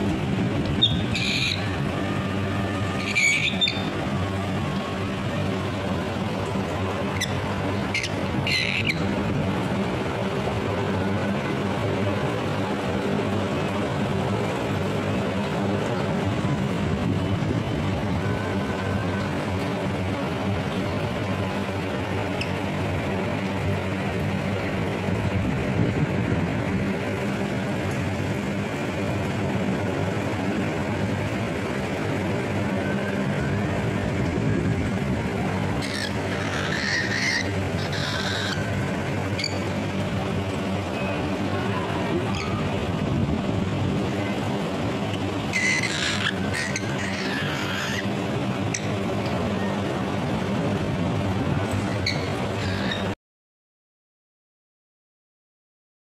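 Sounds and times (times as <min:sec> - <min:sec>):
steady hum and noise: 0:00.0 - 0:53.2.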